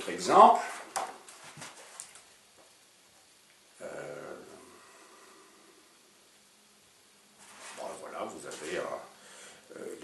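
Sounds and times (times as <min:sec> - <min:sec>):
pages rustling: 0:00.7 - 0:02.3, 0:07.4 - 0:08.9.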